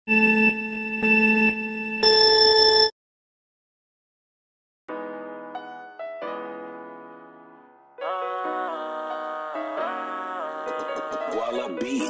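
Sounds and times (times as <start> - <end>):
electronic beeps: 0.1 - 2.9.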